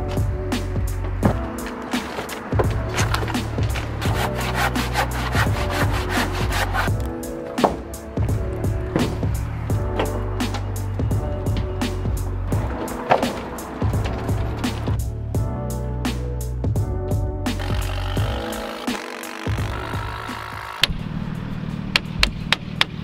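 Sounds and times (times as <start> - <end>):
background music: 0.0 - 23.0
wood creaking and splintering: 1.0 - 11.9, 12.5 - 15.0, 17.6 - 21.0
sharp cracks and knocks: 12.6 - 15.0.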